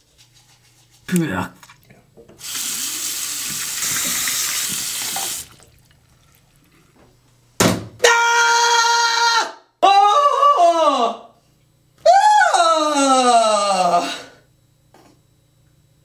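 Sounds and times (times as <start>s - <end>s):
tap water running into sink: 2.4s - 6.6s.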